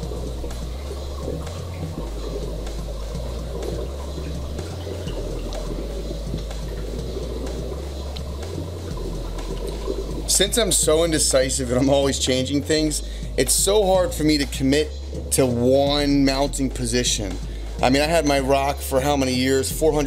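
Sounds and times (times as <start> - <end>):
running water rushing: 0.0 - 14.5
bass line music: 0.0 - 20.0.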